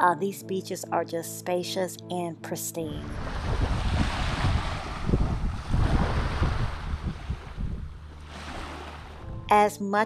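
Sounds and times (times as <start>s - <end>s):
waves lapping on sandy shore: 3.0s - 9.2s
wind buffeting microphone: 3.0s - 9.5s.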